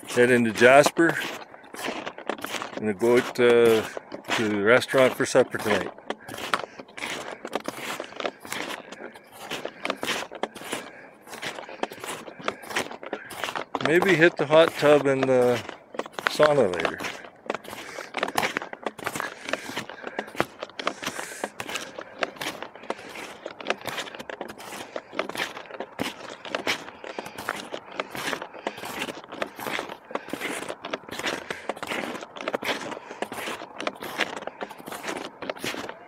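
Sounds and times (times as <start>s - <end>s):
footsteps crunching in snow: 0.0s - 36.0s.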